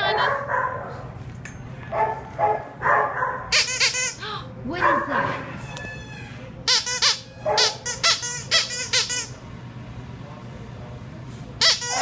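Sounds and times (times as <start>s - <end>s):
dog barking: 0.0s - 1.1s, 1.9s - 3.5s, 4.8s - 5.5s, 7.4s - 7.9s.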